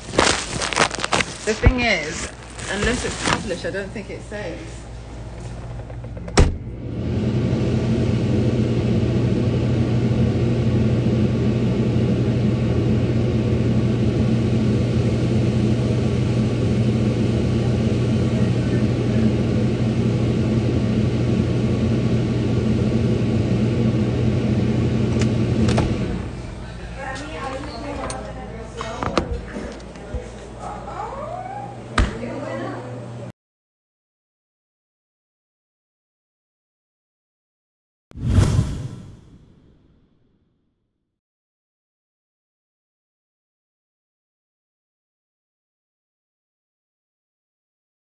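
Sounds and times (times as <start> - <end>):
electric mains hum: 0.0 - 33.3.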